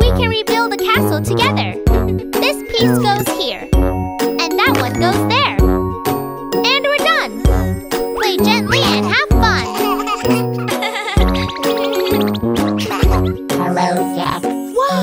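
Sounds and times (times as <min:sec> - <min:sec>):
bouncy backing music: 0:00.0 - 0:15.0.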